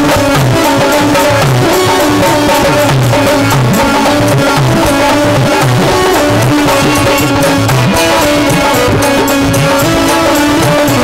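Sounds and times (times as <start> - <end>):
hand drum quick rhythm: 0.0 - 11.0
held melody notes: 0.0 - 11.0.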